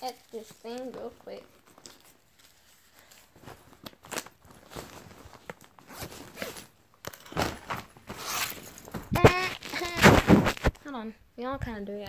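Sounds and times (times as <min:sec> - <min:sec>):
rustling and clicks of handling: 0:00.0 - 0:10.9.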